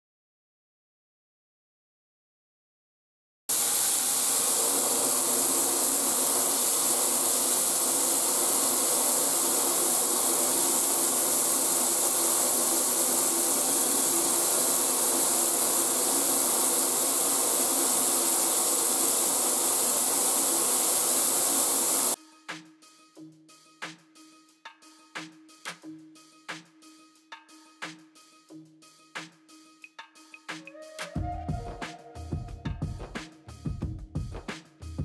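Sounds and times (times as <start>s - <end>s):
shower spraying into bathtub: 3.5s - 22.2s.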